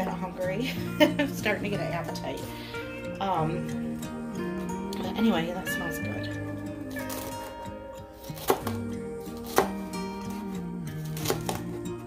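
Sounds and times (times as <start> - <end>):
background music: 0.0 - 12.0
knife hitting cutting board: 8.4 - 8.8.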